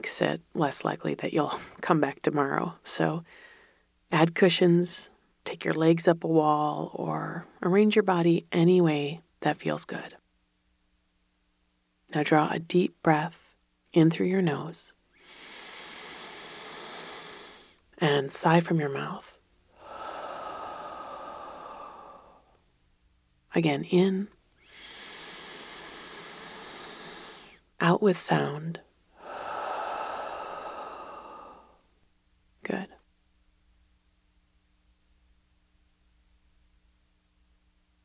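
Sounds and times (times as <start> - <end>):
woman breathing in through nose: 3.3 - 3.9, 15.2 - 17.8, 19.7 - 22.6, 24.6 - 27.6, 29.2 - 31.8
woman sighing: 19.8 - 22.4, 29.2 - 31.8
short vocal sound: 29.2 - 31.8.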